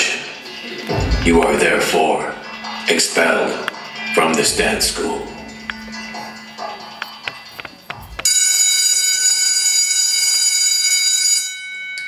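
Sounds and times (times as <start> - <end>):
low hum: 0.8 - 8.3
shrill electronic alarm tone: 2.3 - 11.4.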